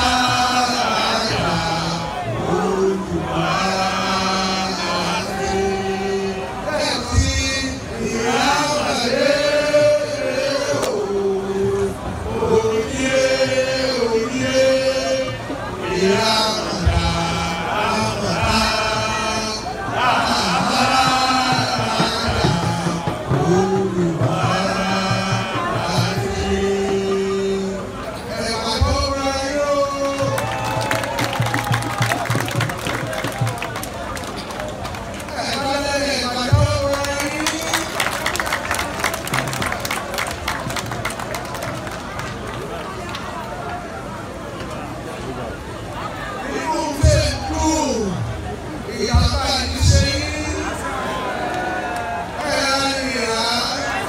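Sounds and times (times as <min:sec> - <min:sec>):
man singing long held notes: 0:00.0 - 0:30.5
crowd noise: 0:00.0 - 0:54.0
handclaps: 0:30.1 - 0:35.7, 0:36.8 - 0:43.3.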